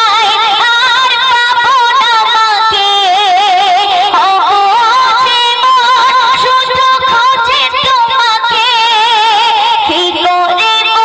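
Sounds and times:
woman singing devotional song: 0.0s - 11.0s.

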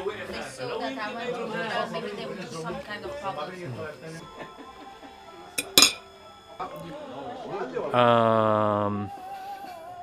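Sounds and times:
background music: 3.0s - 10.0s
cutlery clinking on ceramic plate: 5.6s - 6.0s.

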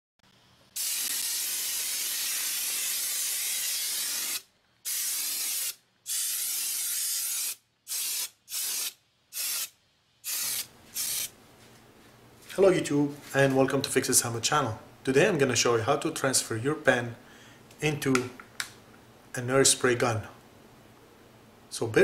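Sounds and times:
compressed air paint sprayer hissing: 0.7s - 11.4s.

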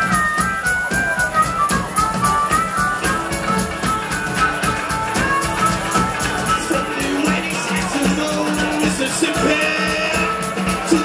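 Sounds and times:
live garage band playing: 0.0s - 11.0s.

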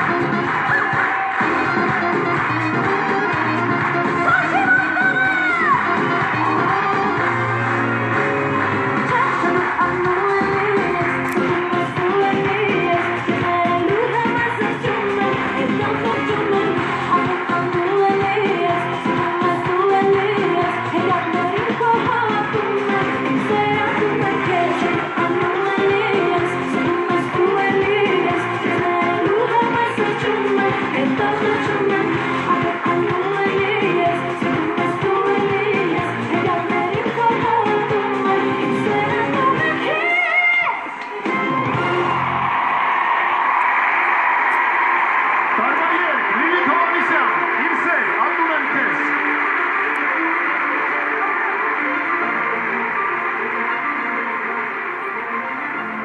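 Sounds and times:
woman singing pop song: 0.0s - 42.1s
band accompaniment: 40.9s - 42.6s.

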